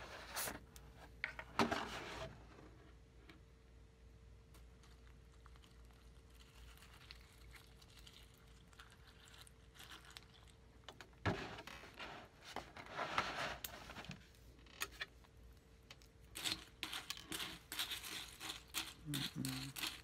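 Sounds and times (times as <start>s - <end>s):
milk pouring into bowl: 5.0s - 10.8s.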